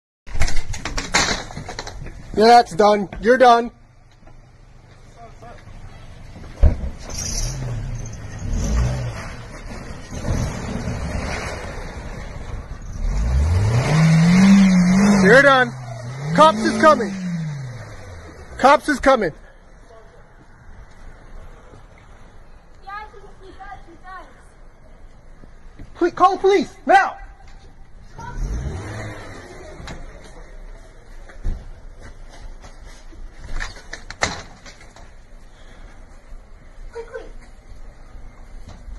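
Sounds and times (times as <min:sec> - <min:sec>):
car engine revving: 0:07.2 - 0:18.9, 0:28.2 - 0:30.6.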